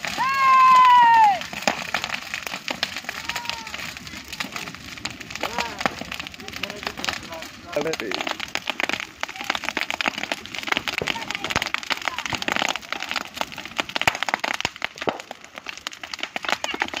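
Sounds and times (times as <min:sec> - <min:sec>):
bonfire crackling and popping: 0:00.0 - 0:17.0.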